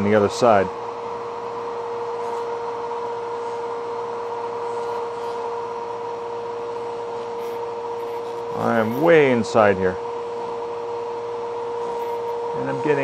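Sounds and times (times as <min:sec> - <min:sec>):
spinning drum whirring with whine: 0:00.0 - 0:13.0.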